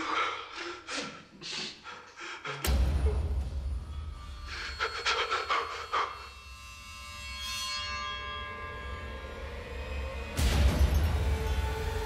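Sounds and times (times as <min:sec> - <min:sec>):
man panting: 0:00.0 - 0:03.0
tense music of sustained tones: 0:02.6 - 0:12.0.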